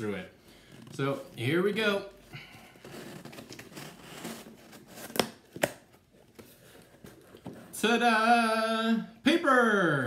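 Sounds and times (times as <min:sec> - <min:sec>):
cardboard rustling and scraping: 0:02.7 - 0:07.8
cardboard snapping: 0:04.9 - 0:05.9.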